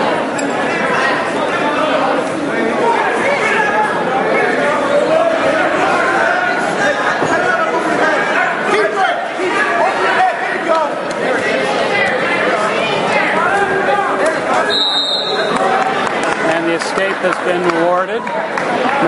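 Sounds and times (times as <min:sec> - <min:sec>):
spectators talking and calling out: 0:00.0 - 0:19.0.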